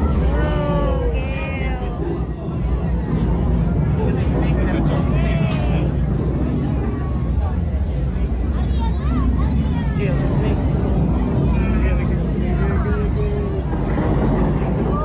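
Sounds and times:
children's voices: 0.0s - 4.2s, 4.8s - 15.0s
low steady rumble: 0.0s - 15.0s
people talking: 0.0s - 15.0s.

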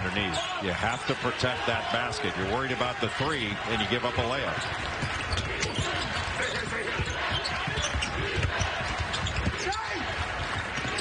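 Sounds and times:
sneakers squeaking: 4.1s - 11.0s
basketball bouncing on wooden floor: 4.2s - 9.7s.

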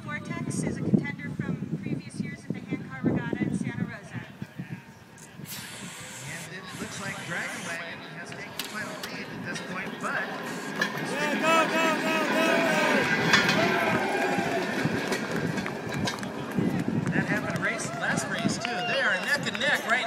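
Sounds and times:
handcar wheels rumbling on rails: 8.4s - 20.0s
people shouting: 11.0s - 15.0s.

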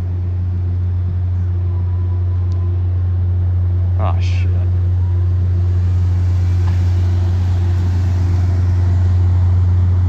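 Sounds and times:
diesel locomotive engine droning: 0.0s - 10.0s.

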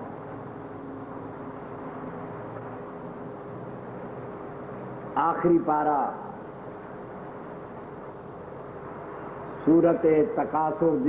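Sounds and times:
faint steady tone: 0.0s - 11.0s
microphone hiss and hum: 0.0s - 11.0s.

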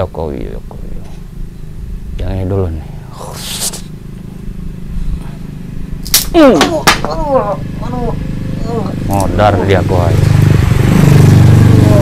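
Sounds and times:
steady low hum: 0.0s - 12.0s
stick cracking against a person: 6.0s - 7.2s.

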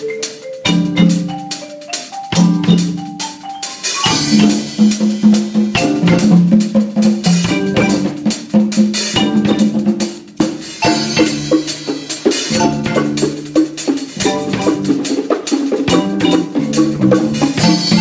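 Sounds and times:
bongos: 0.0s - 18.0s
drum kit with cymbals: 0.0s - 18.0s
marimba: 0.0s - 18.0s
low mallet notes: 0.6s - 1.6s, 2.2s - 8.3s, 9.1s - 9.9s, 10.8s - 11.7s, 12.5s - 13.5s, 14.2s - 15.0s, 15.9s - 18.0s.

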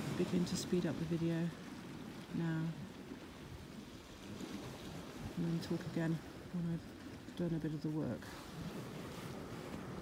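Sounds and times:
sea surf: 0.0s - 10.0s
wind: 0.0s - 10.0s.

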